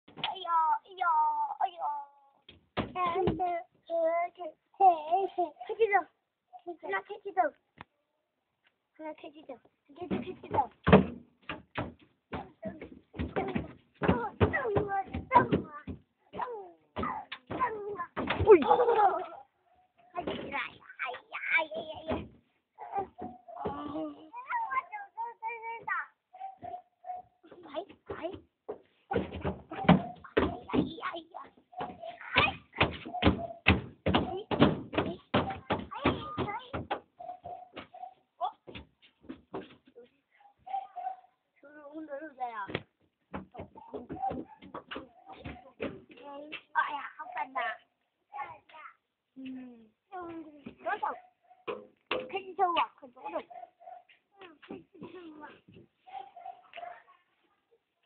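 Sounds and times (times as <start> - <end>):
footsteps thumping on wooden bed: 10.0 - 16.1, 27.6 - 38.1
children chattering and squealing: 12.4 - 28.4, 29.1 - 38.6, 43.5 - 48.9.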